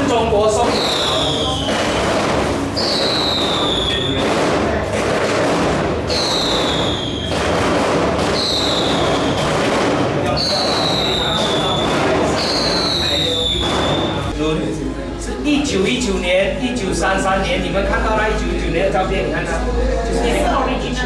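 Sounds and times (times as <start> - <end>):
murmur of people talking: 0.0 - 21.0
high-pitched descending whistle: 10.4 - 14.3.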